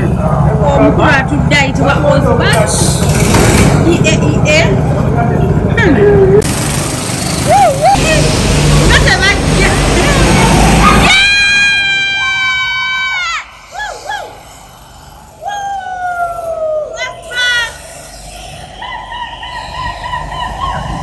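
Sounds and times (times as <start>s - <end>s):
go-kart engines: 0.0s - 21.0s.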